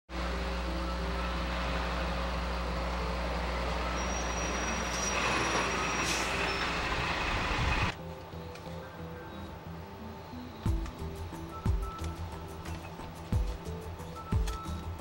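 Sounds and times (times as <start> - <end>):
bus engine running: 0.1 - 15.0.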